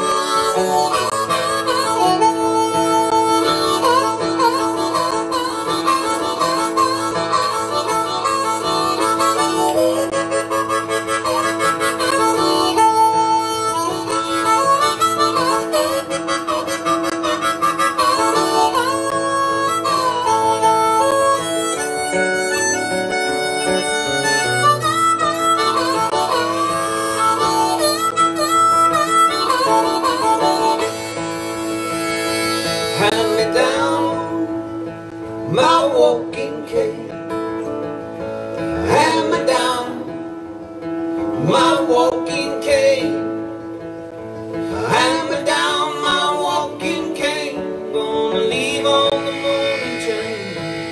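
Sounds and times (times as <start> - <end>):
acoustic guitar accompaniment: 0.0 - 50.9
harmonica bending notes: 0.0 - 50.9.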